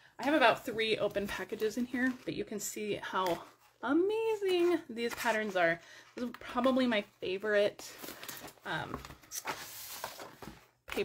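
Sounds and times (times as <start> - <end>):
paper rustling: 4.4 - 5.8, 7.8 - 11.0.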